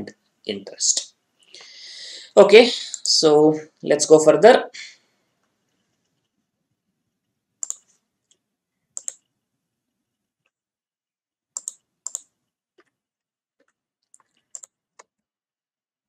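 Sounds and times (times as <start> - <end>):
sharp double clicks: 9.0 - 9.2, 11.6 - 12.3.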